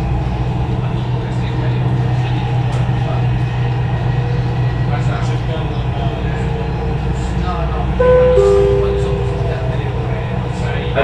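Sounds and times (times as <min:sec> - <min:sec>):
metro train rumble: 0:00.0 - 0:11.0
two-note falling chime: 0:08.0 - 0:10.8.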